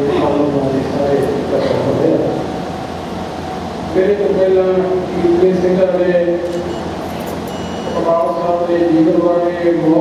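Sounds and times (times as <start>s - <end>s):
man speaking over microphone: 0.0s - 2.5s, 3.9s - 6.7s, 7.9s - 10.0s
steady hall hum: 0.0s - 10.0s.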